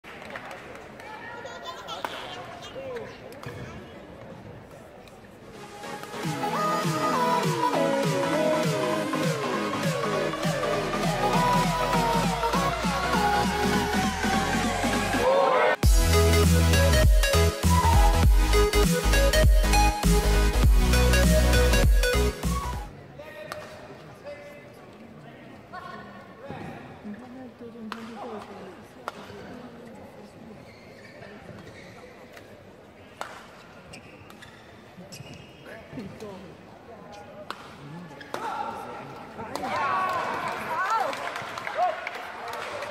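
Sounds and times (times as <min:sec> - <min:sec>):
murmur of spectators: 0:00.0 - 0:42.9
electronic intro music: 0:05.6 - 0:22.9.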